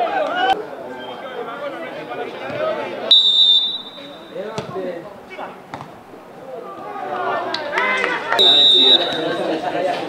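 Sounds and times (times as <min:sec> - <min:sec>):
players shouting: 0:02.4 - 0:04.7, 0:06.6 - 0:09.7.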